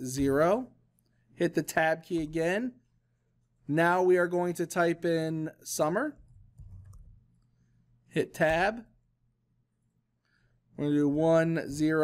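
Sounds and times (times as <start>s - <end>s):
keyboard keystrokes: 6.2s - 7.2s.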